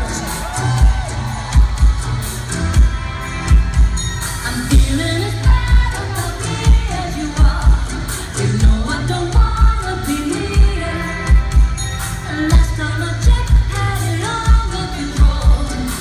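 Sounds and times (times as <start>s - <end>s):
band playing: 0.0s - 16.0s
heavy bass-drum beat: 0.0s - 16.0s
woman singing lead: 3.7s - 16.0s.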